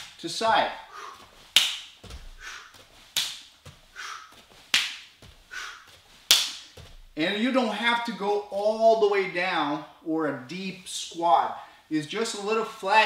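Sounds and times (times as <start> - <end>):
foot slapping into open hand: 1.0 - 7.2.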